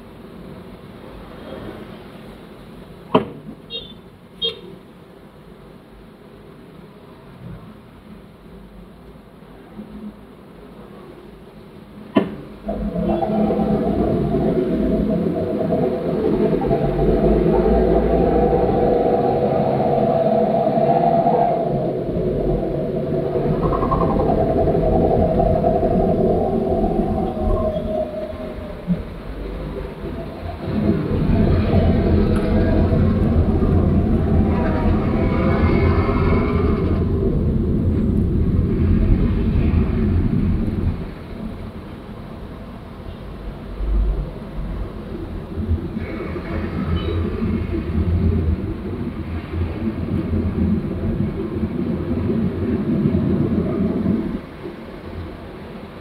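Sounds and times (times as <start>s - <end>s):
heavy truck engines rumbling: 12.5s - 56.0s
moaning whine: 12.6s - 41.8s.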